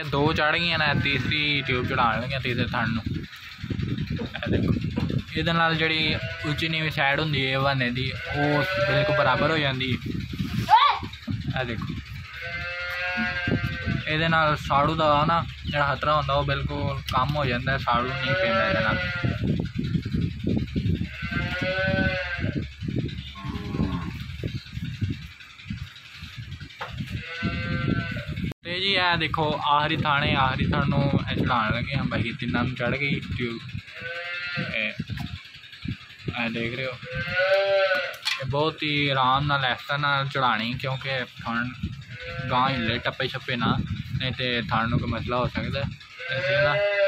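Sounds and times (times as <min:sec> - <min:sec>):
animal bleating: 0:00.6 - 0:03.1, 0:05.7 - 0:10.0, 0:12.1 - 0:15.2, 0:17.8 - 0:19.6, 0:20.9 - 0:24.3, 0:26.9 - 0:28.5, 0:31.0 - 0:32.1, 0:33.3 - 0:35.2, 0:36.4 - 0:38.4, 0:41.4 - 0:43.7, 0:45.5 - 0:47.0
calf bawling: 0:05.2 - 0:10.0, 0:12.0 - 0:15.2, 0:17.8 - 0:19.4, 0:21.0 - 0:24.5, 0:26.2 - 0:28.4, 0:33.4 - 0:35.5, 0:36.4 - 0:38.4, 0:41.4 - 0:43.7, 0:45.9 - 0:47.0.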